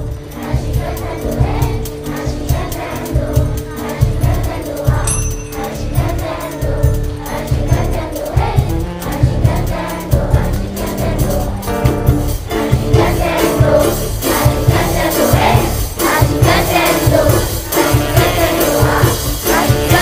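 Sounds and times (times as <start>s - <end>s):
children's choir singing: 0.0s - 20.0s
congas: 0.0s - 20.0s
drum kit beat: 0.0s - 20.0s
live band playing: 0.0s - 20.0s.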